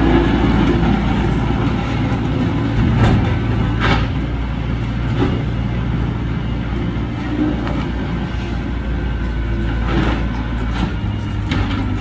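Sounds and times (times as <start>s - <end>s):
diesel engines rumbling: 0.0s - 12.0s.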